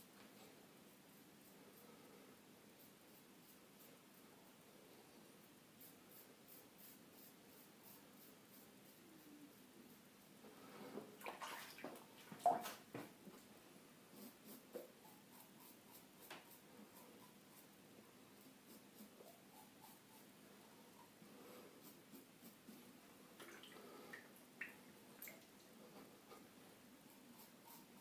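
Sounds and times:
razor scraping stubble: 18.3s - 20.3s.

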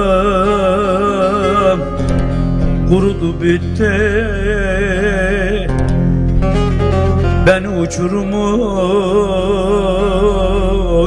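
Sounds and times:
man singing a wavering note: 0.0s - 2.1s, 7.4s - 11.0s
low instrumental accompaniment: 0.0s - 11.0s
plucked lute: 0.0s - 11.0s.

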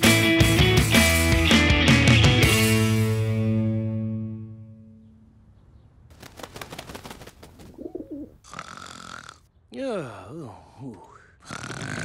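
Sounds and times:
dove cooing: 7.6s - 9.4s
person snoring: 8.4s - 9.4s, 11.4s - 12.0s.

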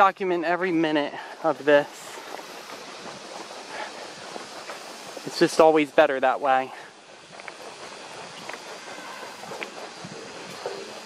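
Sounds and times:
distant ambience: 0.0s - 11.0s
wind hiss: 0.0s - 11.0s.

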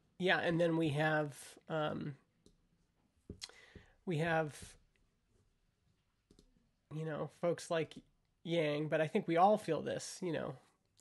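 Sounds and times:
man speaking: 0.0s - 2.3s, 3.4s - 4.8s, 6.9s - 10.8s.

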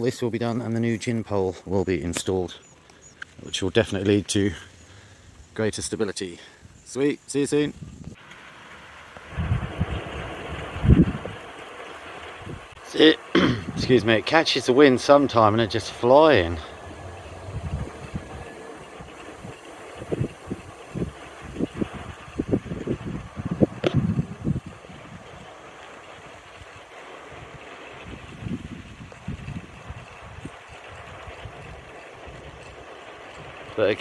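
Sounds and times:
wind turbine turning: 0.0s - 34.0s
wind buffeting microphone: 7.5s - 8.2s, 9.3s - 34.0s.

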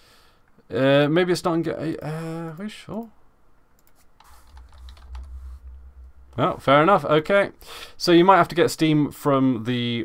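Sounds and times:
low rumble: 4.3s - 7.9s.

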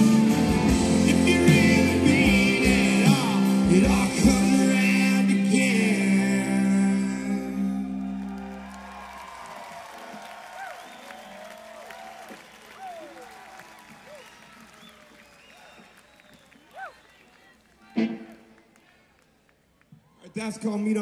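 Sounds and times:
crowd cheering and applauding: 7.4s - 20.7s
loud shout: 8.2s - 15.8s, 16.6s - 18.3s.

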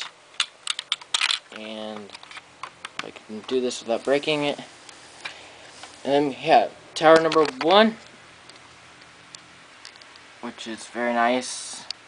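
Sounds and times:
room hiss: 0.0s - 12.0s
soft clicks of plastic handling: 7.1s - 10.3s.

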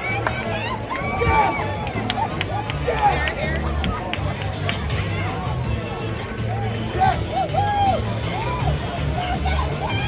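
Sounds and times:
crowd chatter: 0.0s - 10.0s
music playing: 0.0s - 10.0s.

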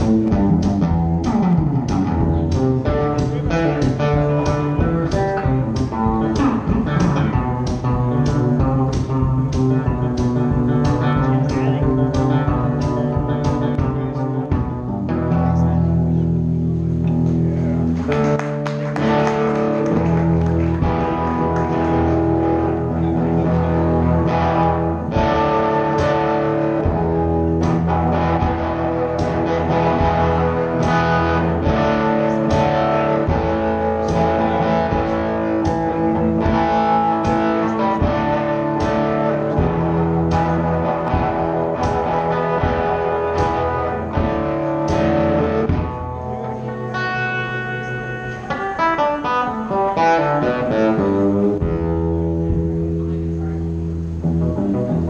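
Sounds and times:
electric guitar plucked notes: 0.0s - 55.0s
low bass line: 0.0s - 55.0s.

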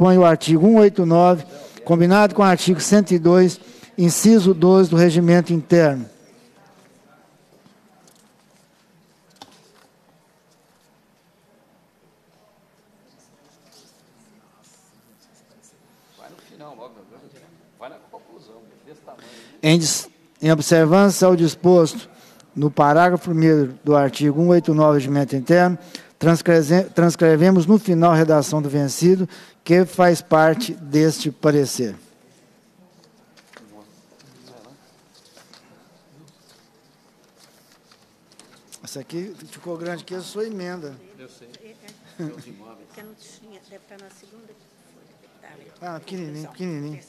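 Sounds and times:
low murmur of voices: 0.0s - 47.0s
murmured voices: 21.2s - 37.3s
paper rustling and scratching: 33.0s - 40.5s.

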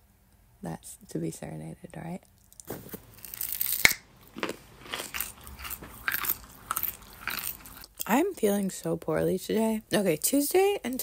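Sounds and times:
person chewing raw carrot: 2.4s - 8.1s.

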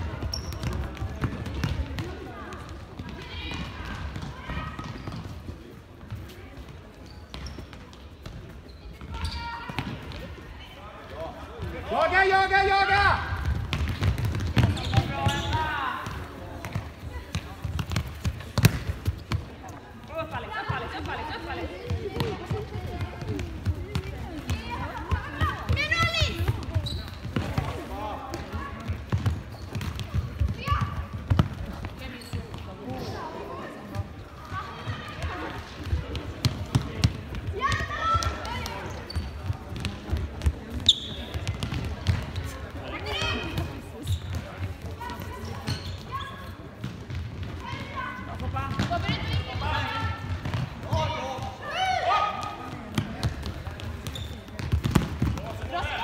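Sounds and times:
ball kicked and bouncing: 0.2s - 10.3s, 13.4s - 19.6s, 21.8s - 32.7s, 35.8s - 45.8s, 46.8s - 49.4s, 50.2s - 51.6s, 52.8s - 55.7s
young players shouting: 51.1s - 52.6s.

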